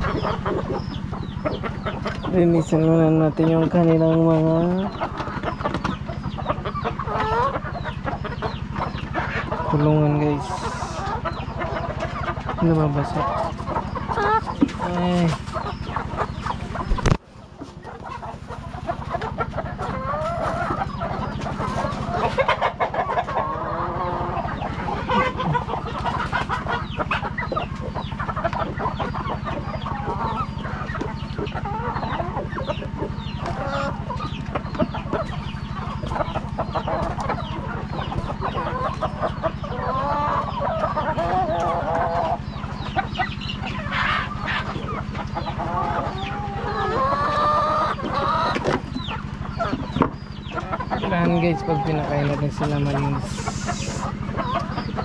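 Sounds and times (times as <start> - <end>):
hens clucking: 0.0 - 55.0
steady low hum: 0.0 - 55.0.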